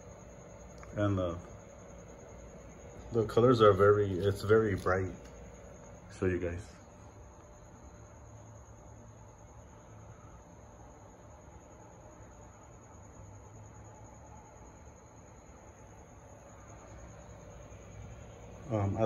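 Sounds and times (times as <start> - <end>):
faint room tone hum and hiss: 0.0 - 19.0
thin high-pitched whine: 0.0 - 19.0.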